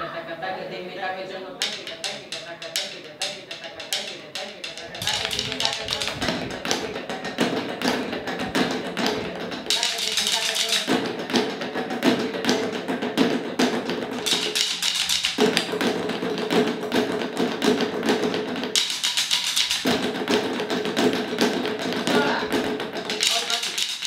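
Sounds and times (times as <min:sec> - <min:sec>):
sticks beating rubber tyres: 0:01.6 - 0:24.0.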